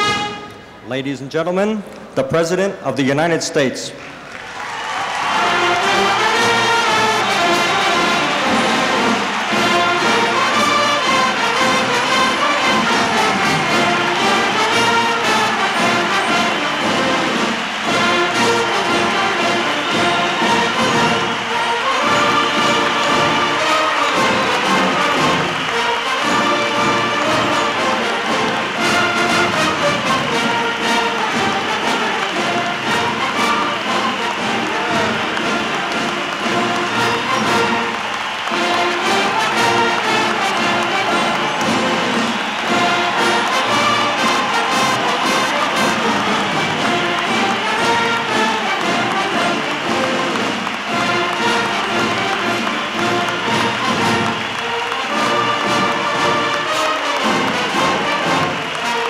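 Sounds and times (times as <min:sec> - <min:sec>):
crowd applauding and cheering: 0:00.0 - 0:01.4, 0:03.0 - 0:59.0
brass band music: 0:00.0 - 0:01.6, 0:02.2 - 0:59.0.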